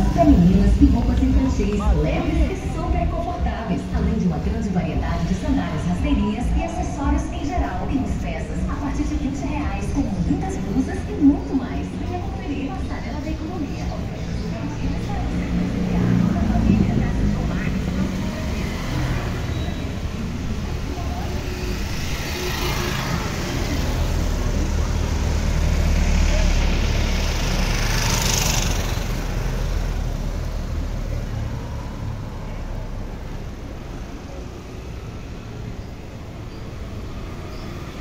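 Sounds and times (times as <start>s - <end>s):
low engine rumble: 0.0s - 38.0s
motorcycles and cars passing: 0.0s - 38.0s.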